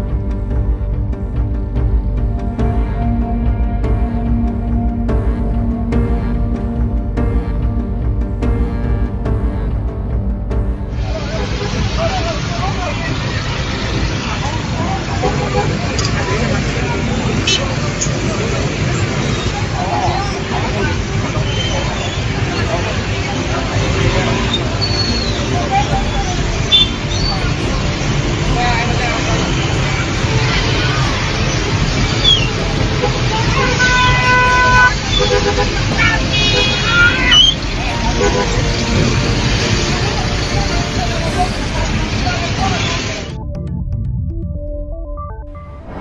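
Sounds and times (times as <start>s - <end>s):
vehicle engine rumbling: 0.0s - 44.3s
people's raised voices: 11.1s - 43.3s
vehicle horn: 11.2s - 12.1s, 15.0s - 16.2s, 20.3s - 27.6s, 29.3s - 39.3s
crowd shouting: 28.6s - 39.0s.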